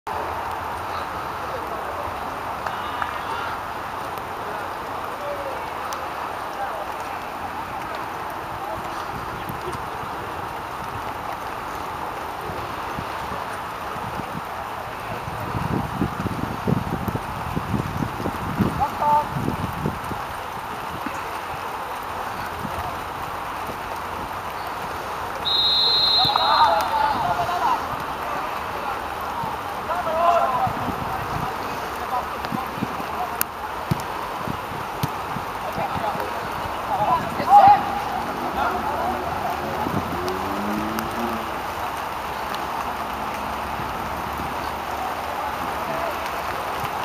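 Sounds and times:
referee's whistle blast: 25.4 - 27.0
young players shouting: 25.6 - 28.0, 36.8 - 40.2
low rumbling buffets: 36.5 - 44.6.

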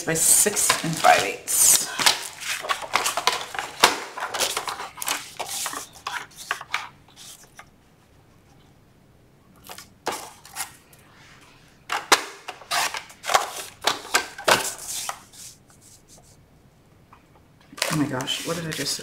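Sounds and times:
paper rustling and sliding: 0.0 - 7.7, 12.6 - 16.4, 17.8 - 19.0.

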